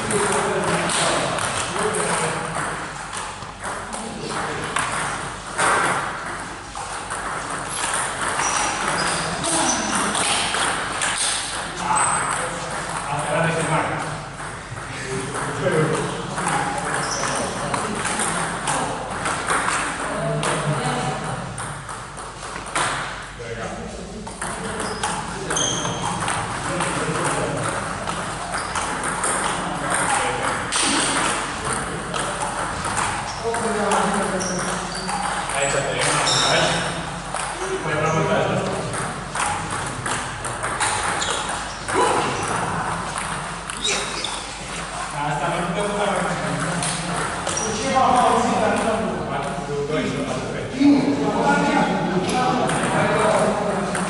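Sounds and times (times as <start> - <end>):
table tennis balls clicking: 0.1 - 23.3, 24.3 - 37.7, 38.5 - 44.5, 46.4 - 49.0, 52.2 - 54.0.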